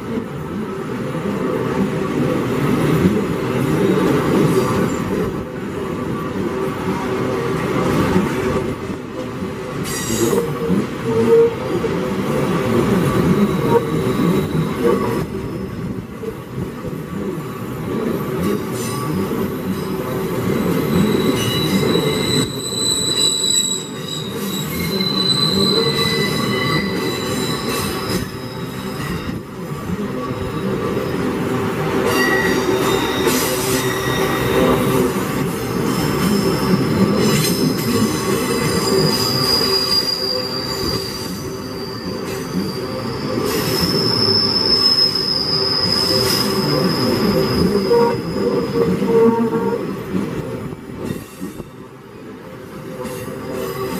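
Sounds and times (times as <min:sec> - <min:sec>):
train wheels rumbling on rails: 0:00.0 - 0:53.9
metallic squeals from train: 0:01.5 - 0:08.7, 0:09.4 - 0:53.9.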